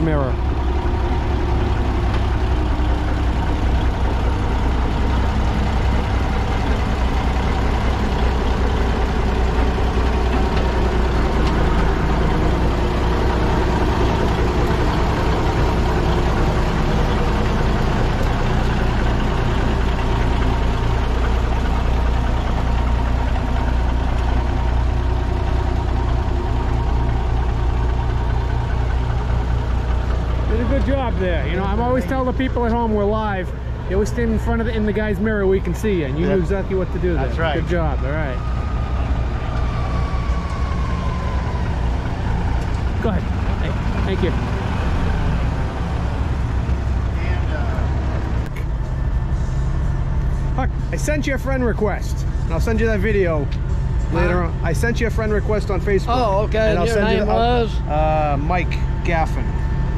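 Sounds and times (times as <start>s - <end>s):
diesel truck engine idling: 0.0s - 59.9s.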